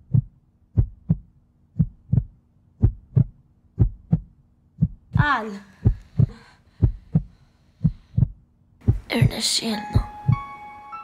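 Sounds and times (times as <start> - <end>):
heartbeat thumps: 0.0 - 10.5.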